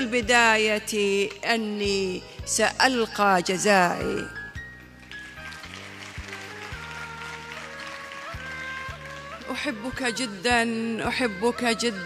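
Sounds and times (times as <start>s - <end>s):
soft keyboard music: 0.0s - 12.0s.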